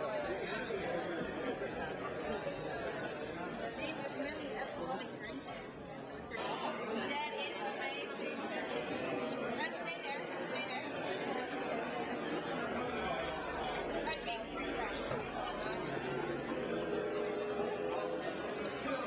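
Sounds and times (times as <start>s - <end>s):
chatter of many people: 0.0s - 19.0s.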